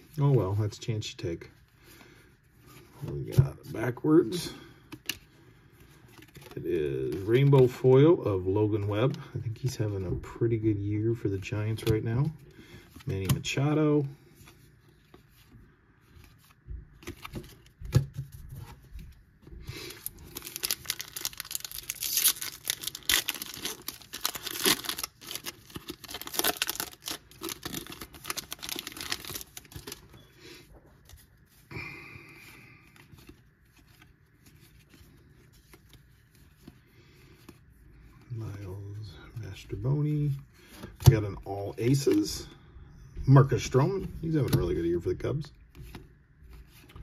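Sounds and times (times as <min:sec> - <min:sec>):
foil wrapper tearing and crinkling: 0:20.0 - 0:30.0.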